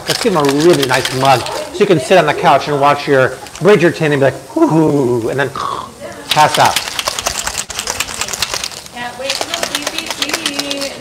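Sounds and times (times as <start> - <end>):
shaker bottle ball rattling: 0.0 - 4.0, 6.3 - 11.0.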